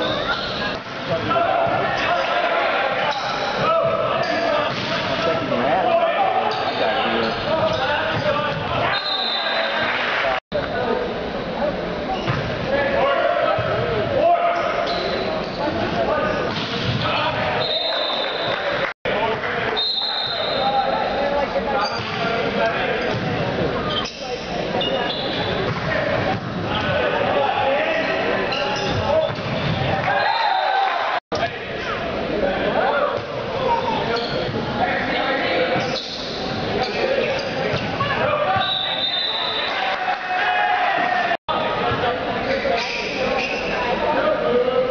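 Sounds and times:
people shouting in echoing hall: 0:00.0 - 0:04.7, 0:37.9 - 0:41.9
spectators chatting: 0:00.0 - 0:44.9
sneakers squeaking on hardwood: 0:28.5 - 0:29.9.

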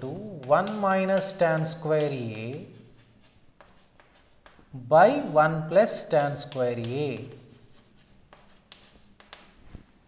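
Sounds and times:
chalk tapping and scratching: 0:00.0 - 0:10.0.

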